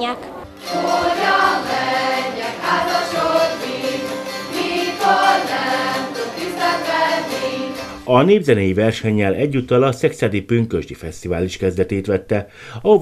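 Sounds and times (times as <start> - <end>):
zithers strummed: 0.2 - 8.1
group of voices singing folk song: 0.5 - 8.1.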